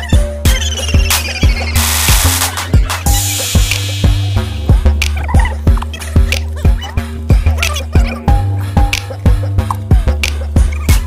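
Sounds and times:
warbling pitched sounds: 0.0s - 8.6s
sustained bass: 0.0s - 11.0s
drum beat: 0.1s - 11.0s.

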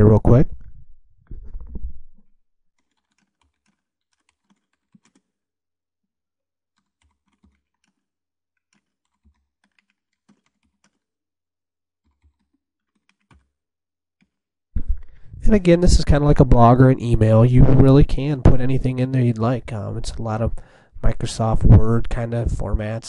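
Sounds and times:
faint keyboard typing: 2.8s - 5.4s, 6.7s - 11.1s, 12.0s - 13.6s.

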